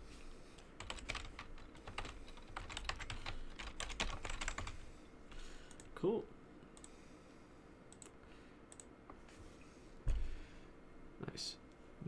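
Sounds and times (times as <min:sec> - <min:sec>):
computer keyboard typing: 0:00.8 - 0:04.8.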